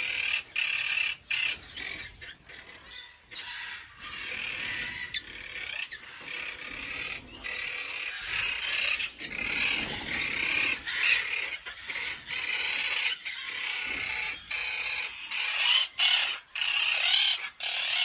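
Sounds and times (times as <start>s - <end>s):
parrots chattering: 0.0s - 18.0s.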